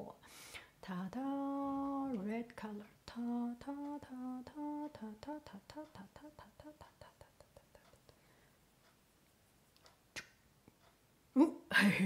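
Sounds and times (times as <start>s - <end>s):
woman softly chanting syllables: 0.8s - 7.8s.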